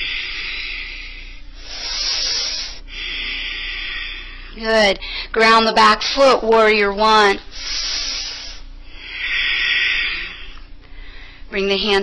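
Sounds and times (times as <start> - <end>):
slow breathing: 0.0 - 5.4, 7.5 - 11.5.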